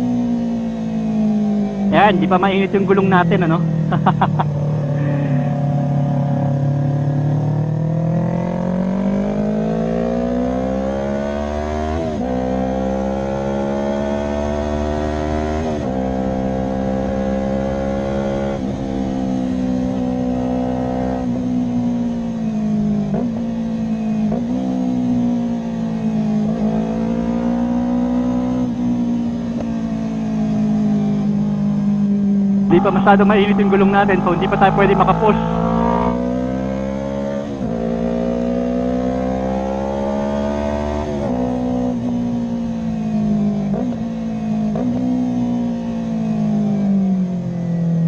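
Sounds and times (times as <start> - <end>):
motorcycle engine revving: 0.0 - 48.0.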